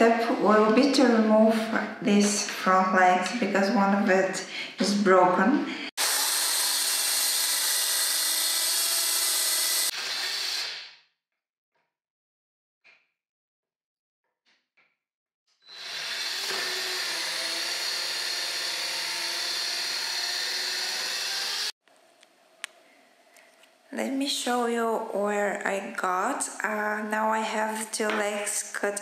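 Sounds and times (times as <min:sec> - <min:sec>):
circular saw cutting wood: 0:05.9 - 0:11.0, 0:15.6 - 0:21.8.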